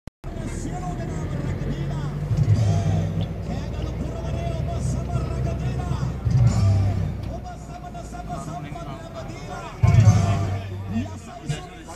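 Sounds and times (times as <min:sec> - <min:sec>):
music: 0:00.2 - 0:11.9
street voices: 0:00.2 - 0:11.9
vehicle engine running: 0:00.2 - 0:11.9.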